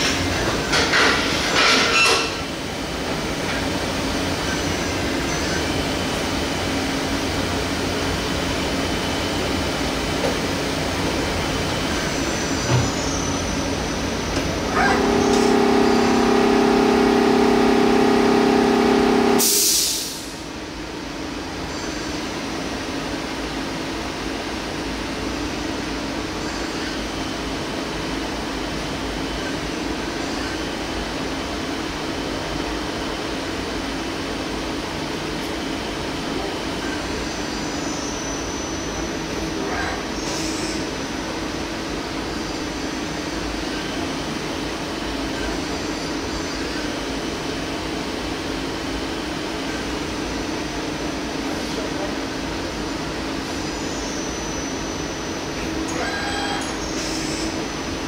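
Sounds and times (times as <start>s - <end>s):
lathe machine hum: 13.5s - 20.3s
louder pitched hum: 14.4s - 20.4s.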